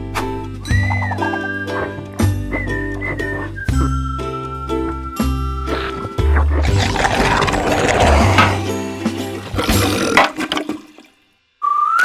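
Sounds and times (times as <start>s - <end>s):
cheerful music with whistled tune: 0.0s - 6.8s, 11.5s - 12.0s
background music: 0.0s - 11.8s
cartoon toilet flush: 6.6s - 11.2s.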